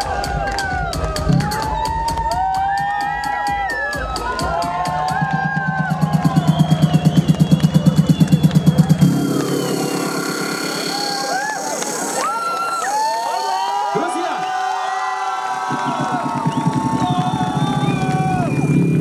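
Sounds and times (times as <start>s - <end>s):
crowd cheering and shouting: 0.0s - 19.0s
electronic dance music: 0.0s - 19.0s.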